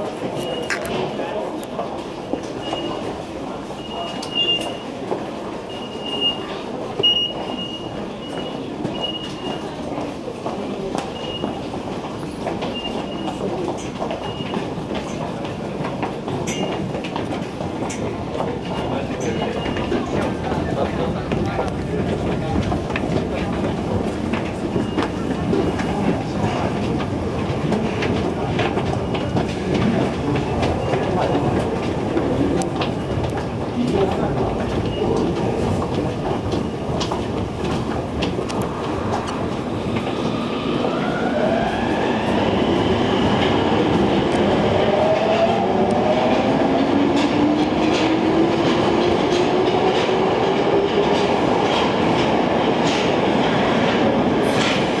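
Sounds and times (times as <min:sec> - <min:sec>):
busy station concourse noise: 0:00.0 - 0:55.0
footsteps on stairs: 0:21.9 - 0:40.3.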